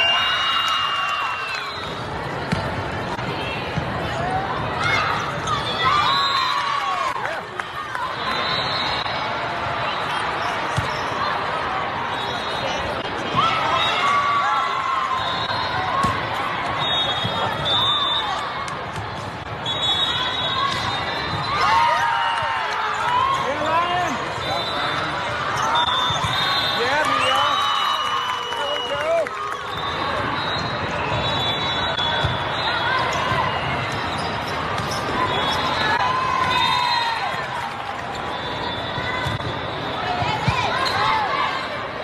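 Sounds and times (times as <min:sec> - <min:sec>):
balls struck and bounced: 0:02.4 - 0:04.0, 0:16.0 - 0:16.4
sneakers squeaking on court floor: 0:09.8 - 0:11.4, 0:29.8 - 0:36.0, 0:38.1 - 0:41.4
crowd chatter echoing: 0:28.8 - 0:42.0.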